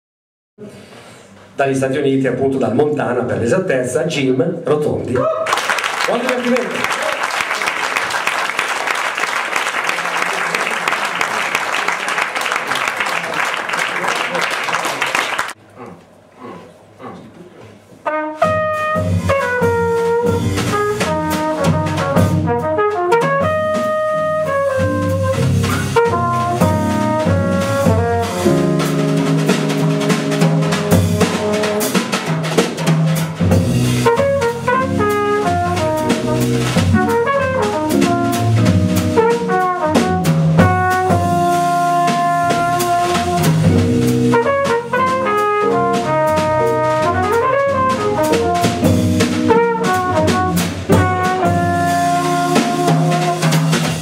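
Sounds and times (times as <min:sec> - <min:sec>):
jazz band playing: 0:17.9 - 0:54.0
brass horn melody: 0:18.0 - 0:32.4, 0:33.6 - 0:54.0.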